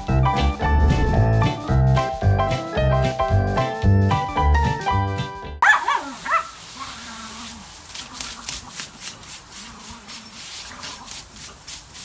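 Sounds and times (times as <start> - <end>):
small dogs yipping: 5.6 - 8.8
hose water spraying: 5.6 - 12.0.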